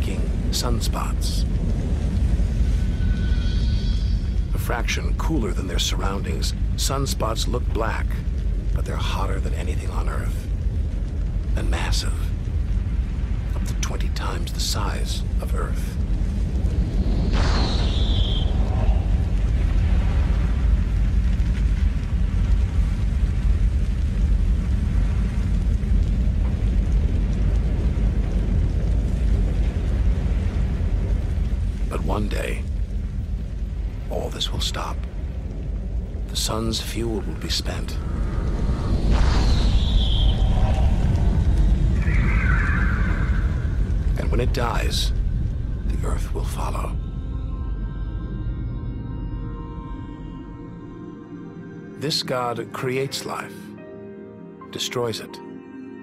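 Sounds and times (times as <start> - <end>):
deep rumble: 0.0 - 52.1
hissing sweep: 0.4 - 5.6, 15.6 - 21.7, 37.4 - 46.2.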